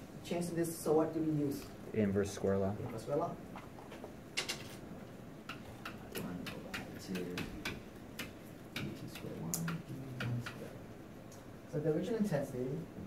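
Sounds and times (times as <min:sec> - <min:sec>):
marker tapping on whiteboard: 0:05.5 - 0:10.7.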